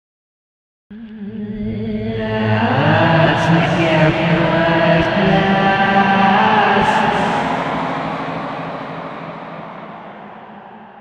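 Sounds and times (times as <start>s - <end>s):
singing: 0.9s - 11.0s.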